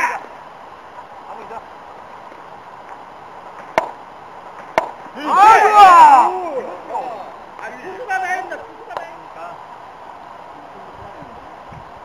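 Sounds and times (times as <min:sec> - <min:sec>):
baseball popping into glove: 0:04.6 - 0:05.0.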